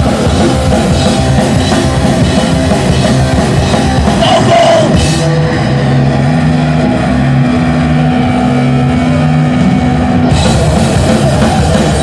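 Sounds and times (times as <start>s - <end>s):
punk band playing live: 0.0s - 12.0s.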